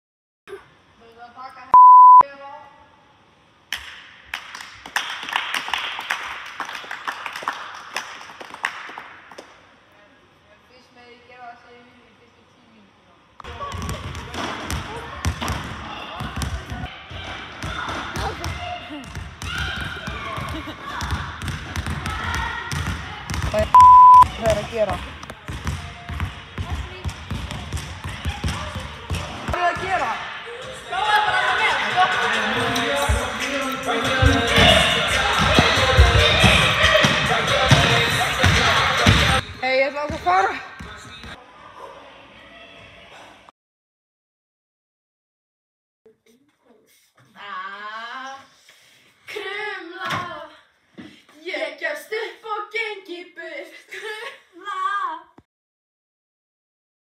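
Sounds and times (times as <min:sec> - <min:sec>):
censor bleep: 0:01.8 - 0:02.2, 0:23.8 - 0:24.3
group of people clapping: 0:03.7 - 0:09.6
ball bouncing on hall floor: 0:13.4 - 0:23.7, 0:24.3 - 0:30.1, 0:40.0 - 0:41.4
people's voices: 0:28.2 - 0:43.4.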